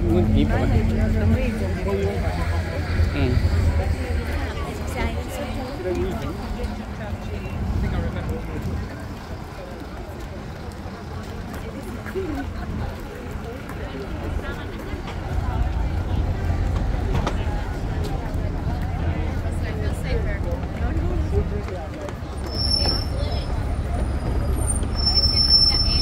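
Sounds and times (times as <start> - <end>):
low rumble of road traffic: 0.0 - 26.0
passersby talking: 0.0 - 26.0.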